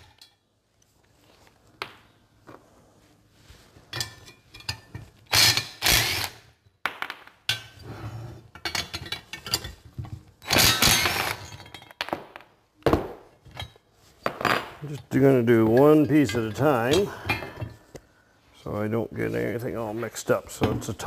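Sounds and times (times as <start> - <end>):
steel parts clinking and knocking: 3.9 - 6.2, 8.5 - 12.1, 14.8 - 17.8
cordless drill spinning nuts: 5.3 - 6.4.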